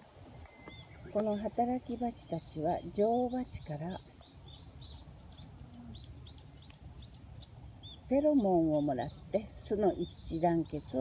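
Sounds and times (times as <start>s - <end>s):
faint low rumble: 0.0s - 11.0s
small bird chirping: 0.4s - 11.0s.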